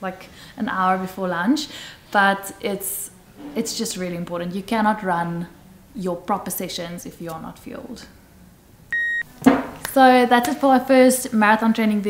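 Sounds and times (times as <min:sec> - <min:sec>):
short electronic beep: 0:08.9 - 0:09.3.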